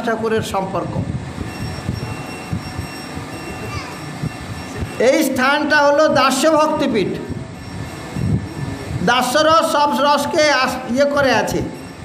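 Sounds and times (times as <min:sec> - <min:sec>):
steady rumbling noise: 0:00.0 - 0:12.0.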